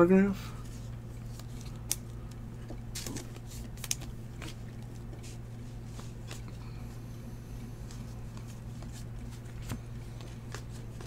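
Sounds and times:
steady low hum: 0:00.0 - 0:11.0
cards ticking and sliding: 0:00.7 - 0:06.8, 0:07.7 - 0:11.0.

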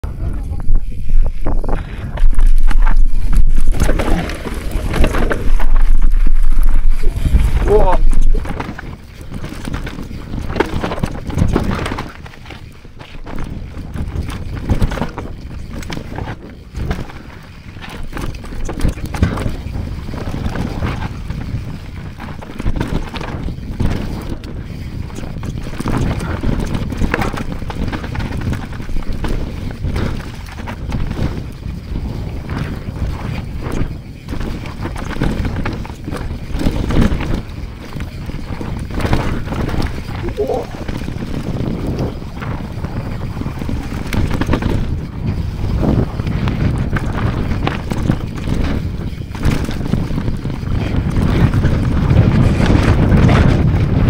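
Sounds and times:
bike rattling and knocking: 0:00.0 - 0:54.0
bike tyres on dirt: 0:00.0 - 0:54.0
wind rumble on microphone: 0:00.0 - 0:54.0.

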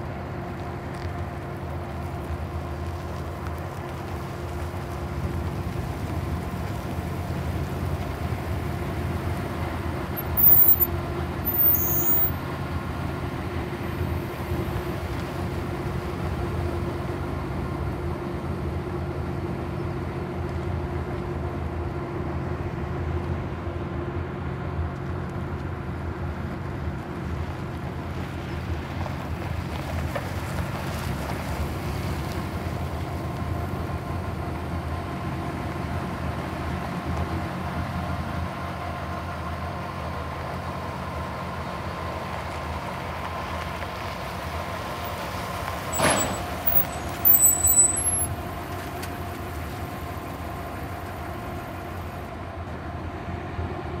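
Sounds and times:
pickup truck engine running: 0:00.0 - 0:23.9, 0:24.8 - 0:53.3.

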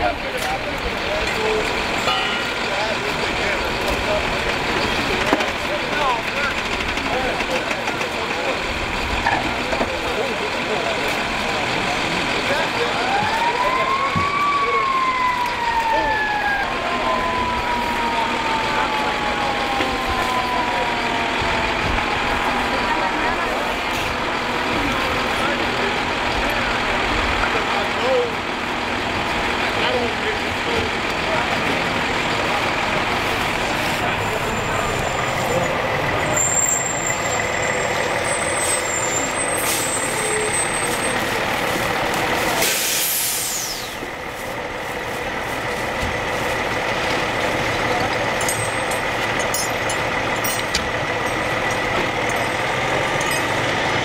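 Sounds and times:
fire engines running: 0:00.0 - 0:54.0
siren wailing: 0:12.7 - 0:23.7.

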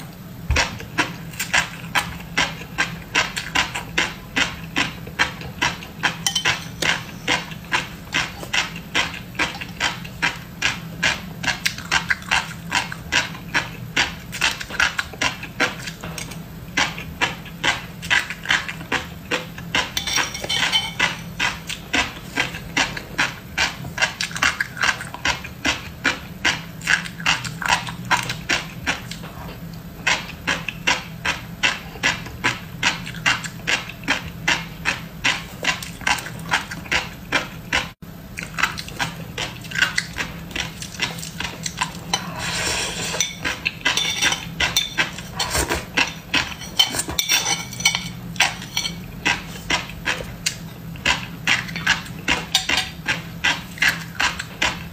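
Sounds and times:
chewing with crisp pops: 0:00.1 - 0:42.4, 0:43.2 - 0:54.9
metal spoon scraping ceramic plate: 0:20.0 - 0:21.3, 0:42.1 - 0:49.1.

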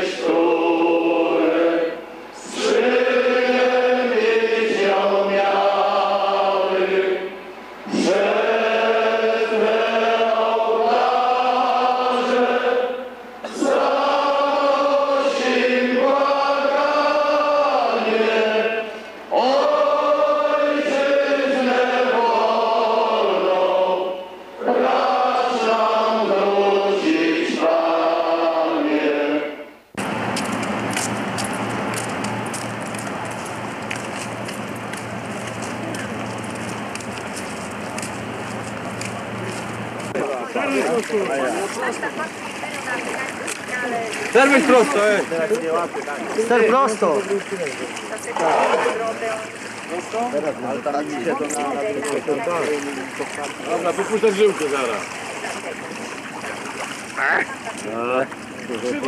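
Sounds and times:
crowd singing a hymn: 0:00.0 - 0:30.1, 0:39.8 - 0:56.3
outdoor rumble: 0:30.0 - 0:50.6.

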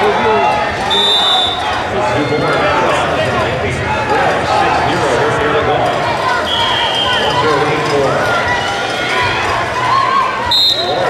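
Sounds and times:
crowd calling and chattering: 0:00.0 - 0:11.0
referee's whistle blast: 0:00.9 - 0:01.7, 0:06.5 - 0:07.3, 0:10.5 - 0:11.0.

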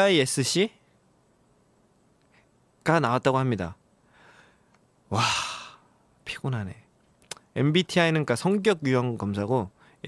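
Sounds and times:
man sighing: 0:05.1 - 0:06.0.

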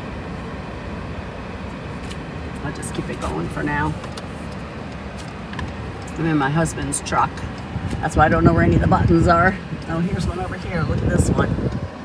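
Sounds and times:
truck road and engine noise: 0:00.0 - 0:12.0.

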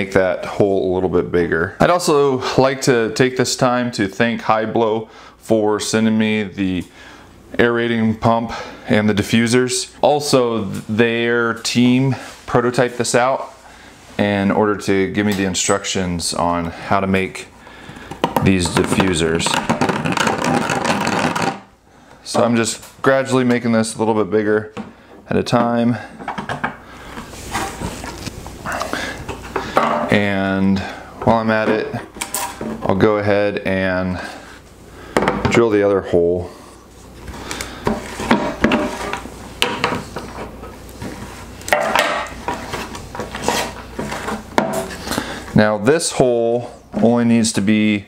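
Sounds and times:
deburring tool scraping plastic: 0:18.0 - 0:21.7.

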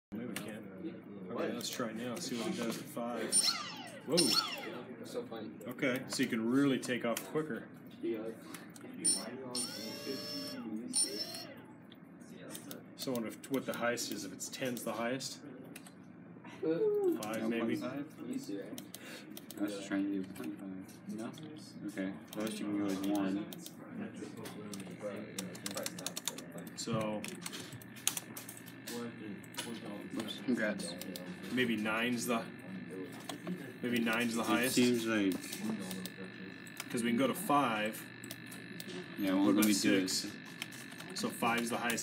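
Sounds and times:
high-pitched electric motor whine: 0:02.2 - 0:05.2, 0:09.0 - 0:11.6, 0:26.6 - 0:42.0
indistinct voices: 0:22.2 - 0:42.0.

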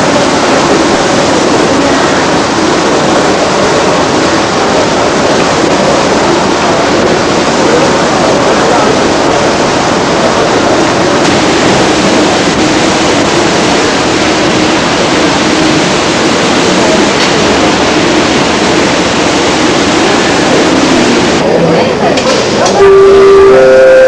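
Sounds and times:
faint murmur of voices: 0:00.0 - 0:14.0, 0:16.2 - 0:24.0
hiss-like terminal hall ambience: 0:00.0 - 0:24.0.

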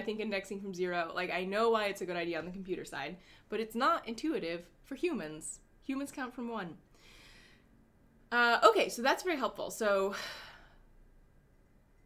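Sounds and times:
woman speaking: 0:00.0 - 0:06.8, 0:08.3 - 0:10.2
breathy sigh: 0:10.1 - 0:11.0.

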